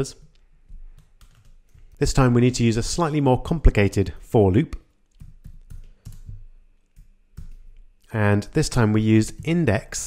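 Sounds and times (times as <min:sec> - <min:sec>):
faint keyboard keystrokes: 0:00.3 - 0:02.0.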